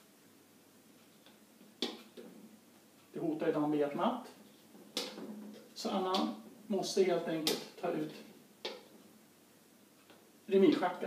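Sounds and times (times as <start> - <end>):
chess piece click on board: 7.4 - 7.7.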